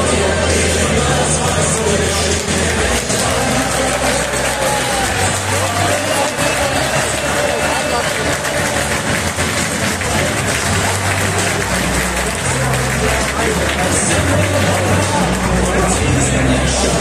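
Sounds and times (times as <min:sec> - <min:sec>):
music over loudspeakers: 0:00.0 - 0:17.0
stadium crowd singing and cheering: 0:00.0 - 0:17.0.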